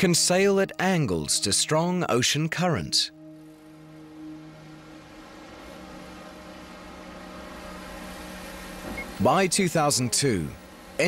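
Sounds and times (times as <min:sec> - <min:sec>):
low musical drone: 0:00.0 - 0:11.0.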